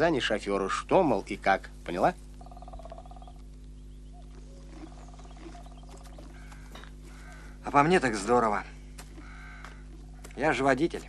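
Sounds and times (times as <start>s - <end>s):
steady low hum: 0.0s - 11.0s
animal rapid rattling call: 2.4s - 3.4s, 4.6s - 8.1s.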